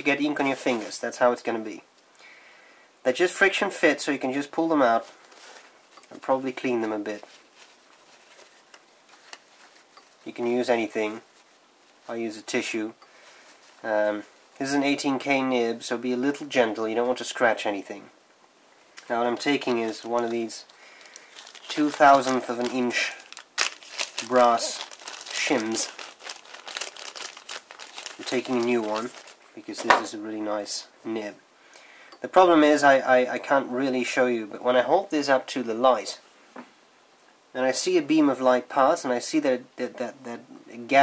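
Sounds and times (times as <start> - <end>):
tissue rustling: 0.3 - 1.1, 4.4 - 14.9, 19.0 - 29.5
plastic bag crinkling: 4.9 - 12.1, 19.0 - 30.1.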